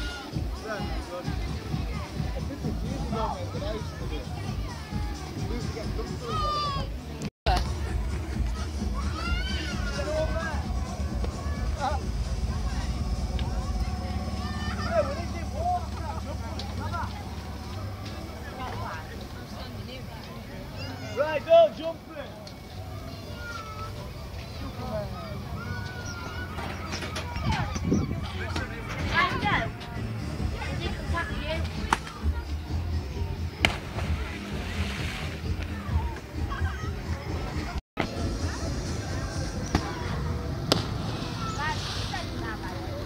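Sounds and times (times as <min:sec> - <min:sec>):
murmur of crowd voices: 0:00.0 - 0:43.0
wind buffeting microphone: 0:27.3 - 0:29.7.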